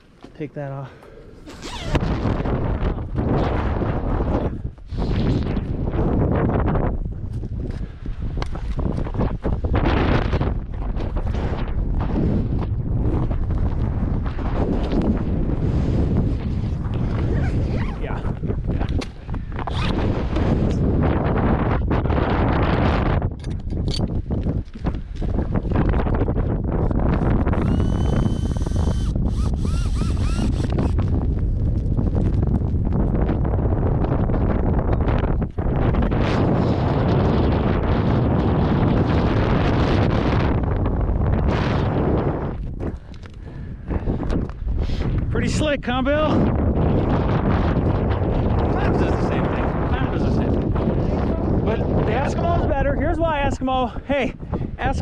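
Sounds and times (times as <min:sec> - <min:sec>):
wind rumbling on microphone: 0:00.0 - 0:55.0.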